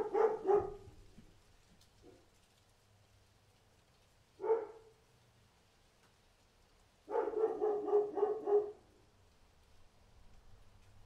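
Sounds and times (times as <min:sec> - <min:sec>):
dog barking: 0:00.0 - 0:01.0, 0:04.4 - 0:05.0, 0:07.1 - 0:08.9.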